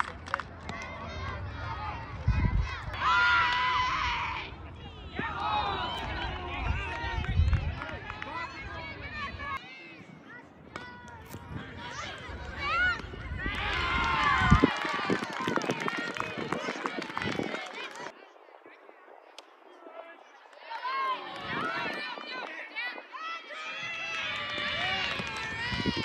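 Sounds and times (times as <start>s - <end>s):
crowd shouting and cheering: 0.0s - 18.2s, 19.8s - 26.0s.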